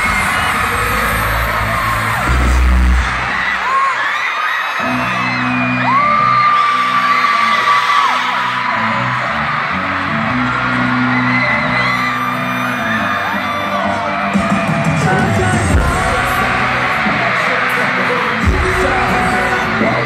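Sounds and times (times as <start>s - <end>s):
crowd screaming: 0.0s - 20.0s
loud live concert music: 0.0s - 20.0s
long high scream: 3.3s - 14.2s.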